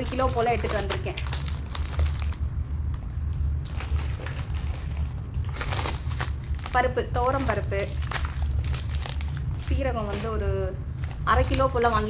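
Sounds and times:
plastic packets crinkling: 0:00.0 - 0:02.5, 0:03.6 - 0:12.0
steady low hum: 0:00.0 - 0:12.0.

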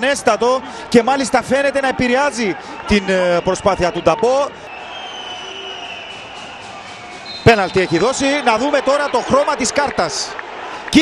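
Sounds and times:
faint stadium ambience: 0:00.0 - 0:11.0.

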